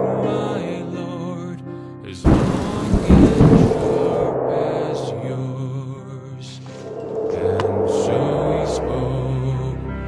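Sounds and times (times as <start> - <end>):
sudden loud crash: 2.3 - 5.7
deep rolling rumble: 2.3 - 5.8.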